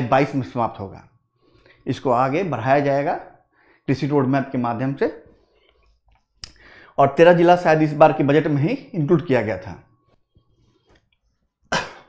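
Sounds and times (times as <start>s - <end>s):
man speaking: 0.0s - 1.1s, 1.8s - 5.3s, 7.0s - 9.9s.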